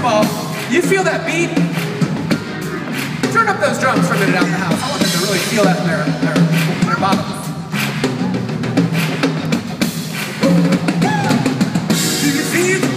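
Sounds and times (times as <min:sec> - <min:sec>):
band playing: 0:00.0 - 0:12.9
rock drum kit beat: 0:00.0 - 0:12.9.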